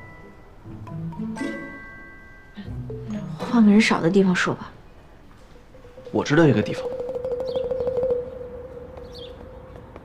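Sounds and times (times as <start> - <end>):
steady held tone: 5.7 - 9.0
bird chirping: 5.7 - 9.9.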